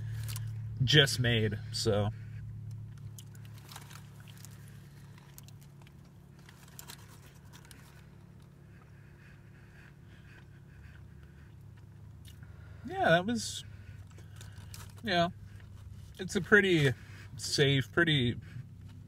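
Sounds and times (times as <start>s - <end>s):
low hum inside car cabin: 0.0s - 19.0s
man chewing with mouth closed: 2.3s - 12.8s, 13.7s - 16.2s.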